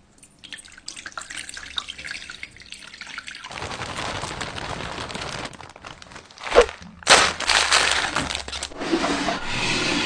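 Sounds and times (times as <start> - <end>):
plastic packaging rustling: 3.4 - 8.8.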